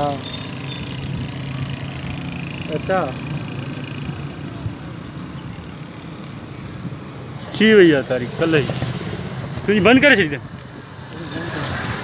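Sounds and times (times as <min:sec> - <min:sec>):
background traffic rush: 0:00.0 - 0:12.0
vehicle engine hum: 0:00.0 - 0:12.0.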